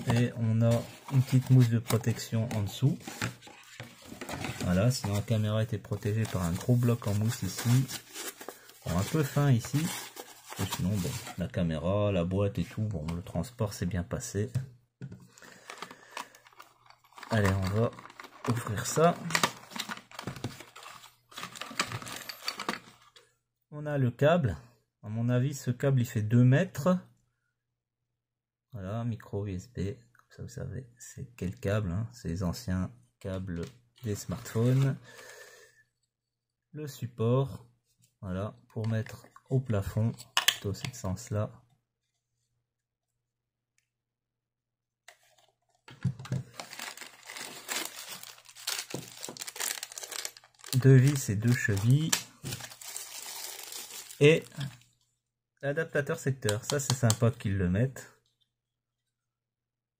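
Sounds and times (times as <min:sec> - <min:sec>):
packaging rustling and clicking: 0:00.0 - 0:05.4, 0:06.0 - 0:11.4, 0:15.4 - 0:23.1, 0:45.1 - 0:54.8
cardboard box being opened: 0:06.2 - 0:11.4, 0:46.5 - 0:50.8, 0:52.5 - 0:54.2
plastic bag crinkling: 0:15.5 - 0:22.6, 0:46.4 - 0:54.8.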